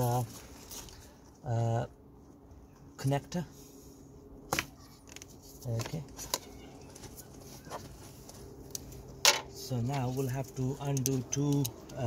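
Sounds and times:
steady low hum: 0.0 - 12.0
faint handling noise: 4.5 - 12.0
light clicks of handled parts: 7.7 - 12.0.

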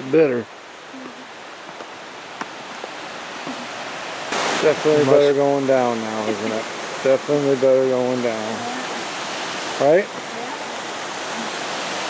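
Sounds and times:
creek running down cascades: 0.0 - 12.0.

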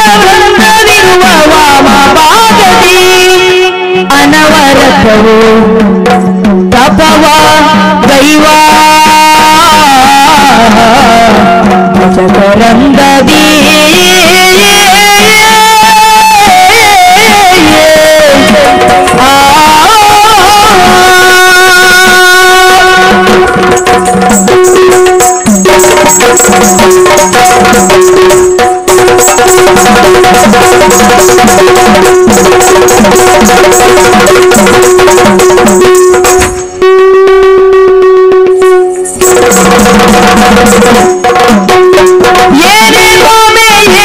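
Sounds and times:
rapid drum strokes: 4.2 - 44.0.

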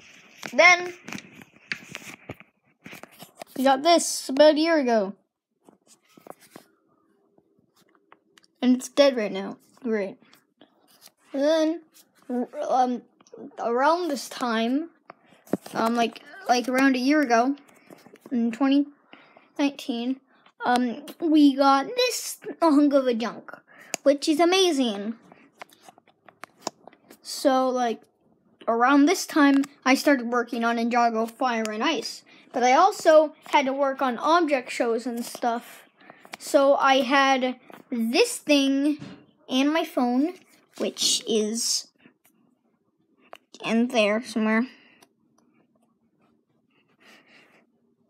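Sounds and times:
person speaking: 0.0 - 2.2, 2.9 - 5.2, 8.6 - 19.0, 19.6 - 25.9, 28.6 - 42.0.

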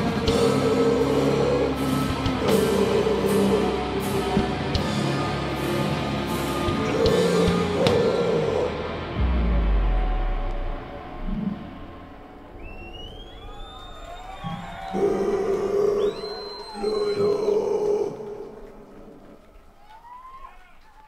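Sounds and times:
heavy rock band chord: 5.8 - 12.4
loud droning tones: 5.8 - 16.4
crowd applause: 12.6 - 21.0.

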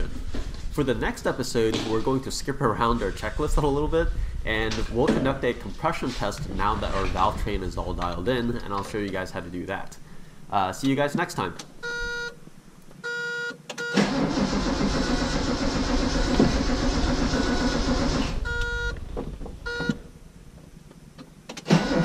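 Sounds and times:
dashboard warning buzzer: 11.8 - 12.4, 13.0 - 14.1, 18.4 - 19.0, 19.7 - 20.0
engine firing: 13.9 - 19.0, 21.6 - 22.0
starter motor cranking: 13.9 - 19.0, 21.6 - 22.0.

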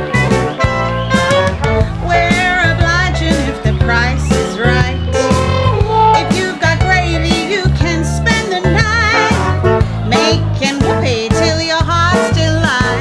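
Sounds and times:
jazz band playing: 0.0 - 13.0
woman singing with vibrato: 1.9 - 9.5.

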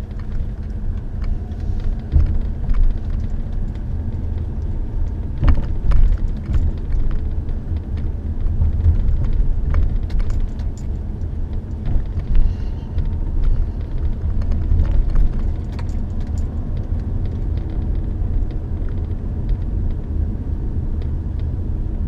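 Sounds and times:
car engine and tyres rumbling: 0.0 - 22.0.

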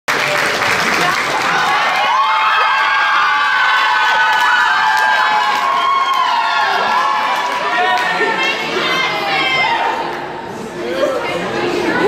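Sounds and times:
audience applauding: 0.1 - 8.7
crowd whooping and shouting: 1.0 - 10.1.

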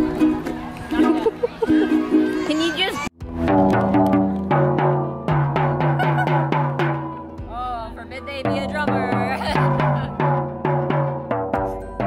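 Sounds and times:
ukulele strumming: 0.0 - 2.4
voices: 7.5 - 10.2.

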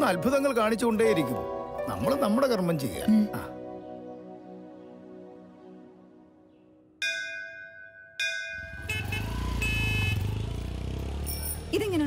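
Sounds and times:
temple bell ringing: 7.0 - 9.1
busy street noise: 8.5 - 12.0
low traffic rumble: 8.5 - 12.0.

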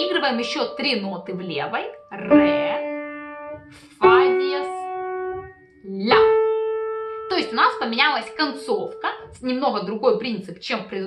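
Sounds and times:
piano single notes: 0.0 - 10.0.

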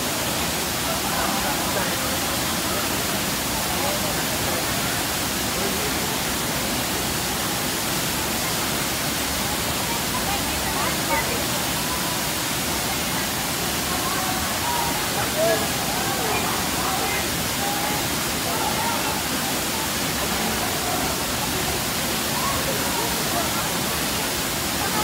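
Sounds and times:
faint voices: 0.0 - 25.0
waterfall rushing: 0.0 - 25.0.

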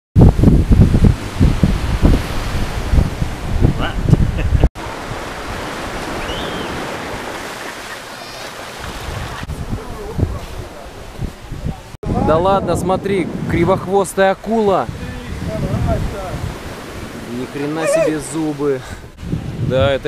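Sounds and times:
wind buffeting microphone: 0.2 - 7.3, 8.8 - 20.0
surf washing: 0.2 - 19.6.

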